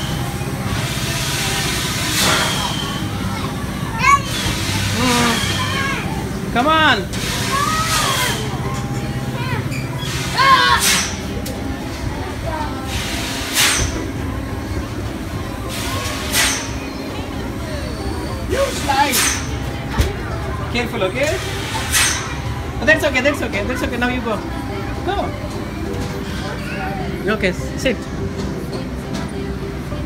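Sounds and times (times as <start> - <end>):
steady low hum: 0.0 - 30.0
children calling and squealing: 2.3 - 6.5, 7.2 - 11.4.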